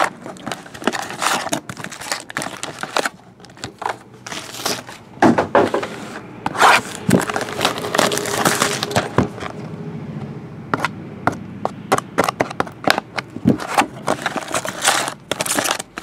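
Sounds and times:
plastic wrapping crinkling: 0.0s - 5.0s, 6.5s - 9.6s, 12.9s - 16.0s.

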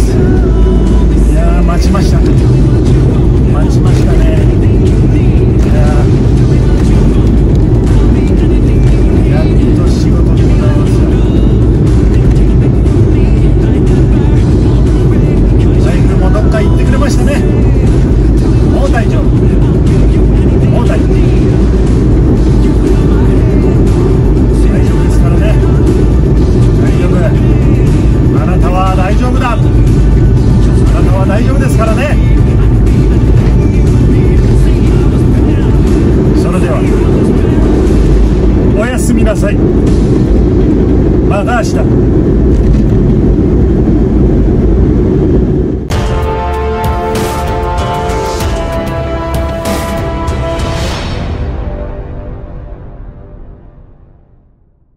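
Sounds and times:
man talking: 0.0s - 2.5s, 3.4s - 6.2s, 8.2s - 11.4s, 15.2s - 17.8s, 18.7s - 19.6s, 20.4s - 21.5s, 24.6s - 25.8s, 26.8s - 29.7s, 30.9s - 32.4s, 36.3s - 37.6s, 38.7s - 39.6s, 41.3s - 41.9s
faint music: 0.0s - 42.5s
car cabin road and engine rumble: 0.0s - 50.5s.

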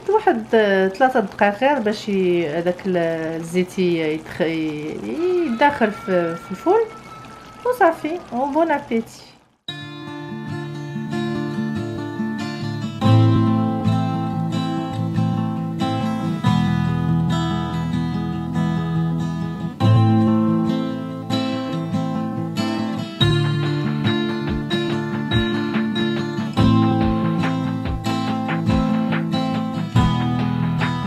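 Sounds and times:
person speaking: 0.0s - 9.4s
plucked acoustic guitar music: 9.7s - 31.0s.

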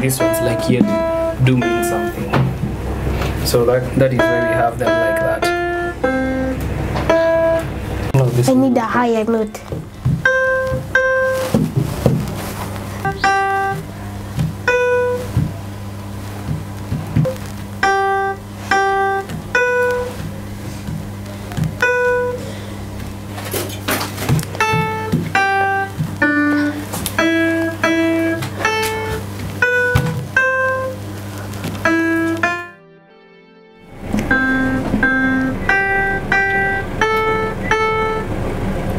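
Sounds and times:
steady low hum: 0.0s - 38.9s
virtual piano notes: 0.0s - 38.9s.

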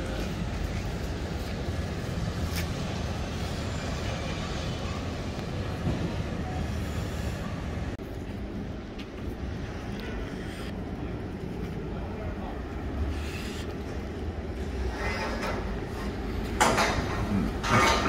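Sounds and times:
city street rumble: 0.0s - 18.0s.

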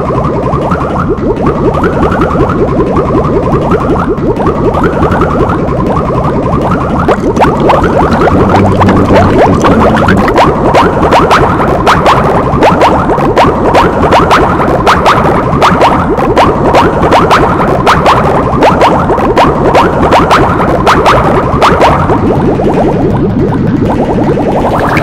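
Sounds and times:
rising cartoon bloops: 0.0s - 25.0s
sharp repeating clicks: 0.0s - 25.0s.

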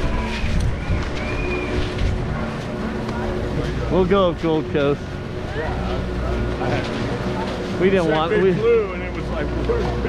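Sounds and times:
constant tone: 0.0s - 10.0s
low machine hum: 0.0s - 10.0s.

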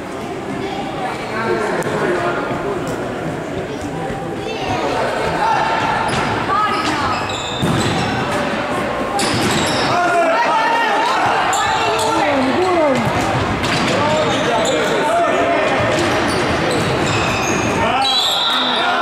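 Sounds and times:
shoes squeaking on wooden floor: 6.0s - 8.3s
ball kicks and bounces: 6.1s - 8.4s.

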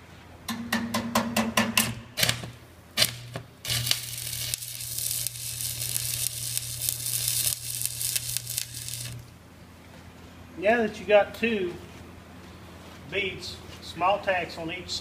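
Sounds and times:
electrode tapping steel plate: 0.5s - 9.2s
welding arc crackling: 1.9s - 9.3s.

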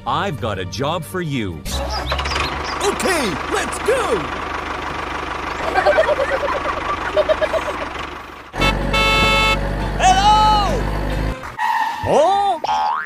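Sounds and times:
squeaky cartoon sounds: 1.7s - 3.2s
toy engine rumble: 2.0s - 8.7s.

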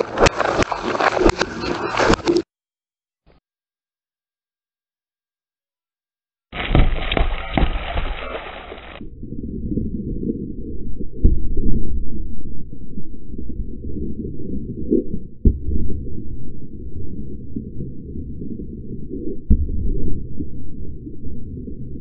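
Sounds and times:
low thuds of cartons bursting: 6.6s - 8.4s
deep muffled tyre rumble: 9.0s - 22.0s.

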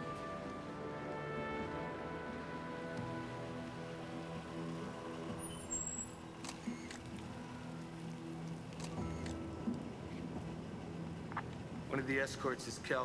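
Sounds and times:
car engine running slowly: 0.0s - 13.0s
low musical drone: 0.0s - 13.0s.

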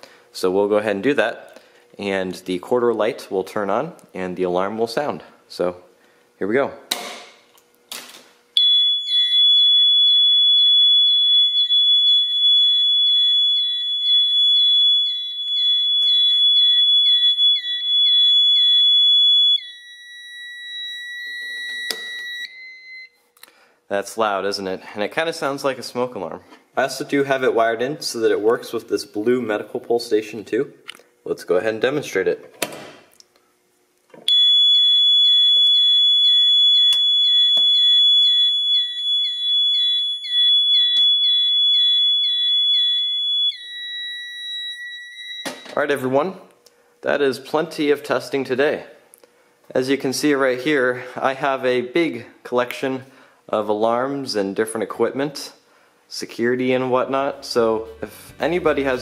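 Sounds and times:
high-pitched alarm horn: 8.6s - 23.1s, 57.2s - 59.0s
high pulsing alarm horn tone: 57.2s - 59.0s.

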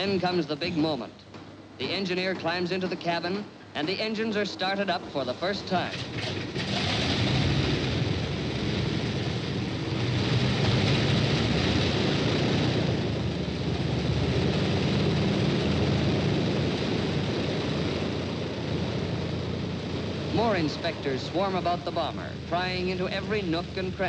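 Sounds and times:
aircraft piston engines running: 0.0s - 24.0s.

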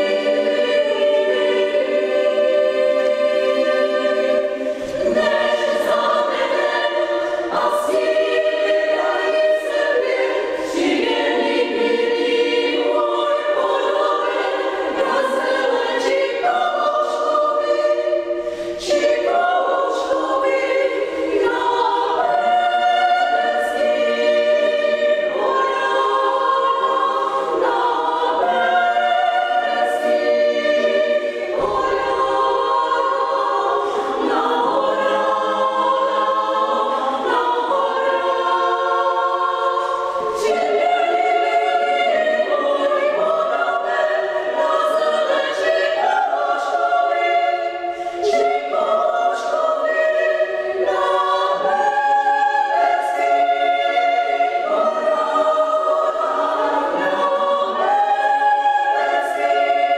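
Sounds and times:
women's choir singing: 0.0s - 59.9s.

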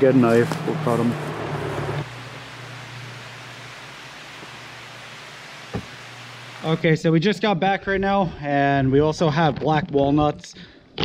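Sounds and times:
outdoor background hiss: 0.0s - 9.2s.

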